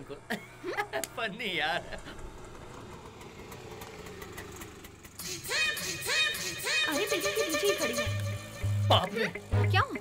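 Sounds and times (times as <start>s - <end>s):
auto-rickshaw engine running: 0.0s - 10.0s
music: 6.6s - 10.0s.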